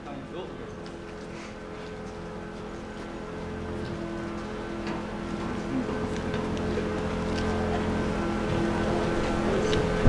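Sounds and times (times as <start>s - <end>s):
held humming tones: 0.0s - 10.0s
vehicle engines idling: 0.0s - 10.0s.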